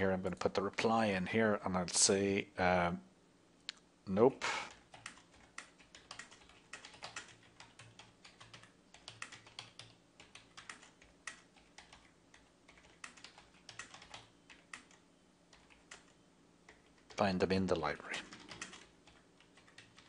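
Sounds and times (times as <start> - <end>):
typing on computer keyboard: 4.7 - 17.3, 18.2 - 20.0.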